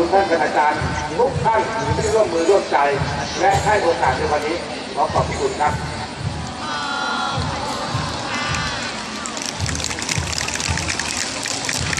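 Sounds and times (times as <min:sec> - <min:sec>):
background music with low beat: 0:00.0 - 0:06.6, 0:07.3 - 0:11.9
audience applause: 0:08.6 - 0:11.9.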